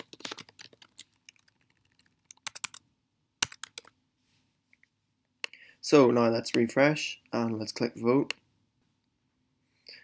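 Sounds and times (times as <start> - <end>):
typing on computer keyboard: 0.0 - 2.8, 3.4 - 3.9.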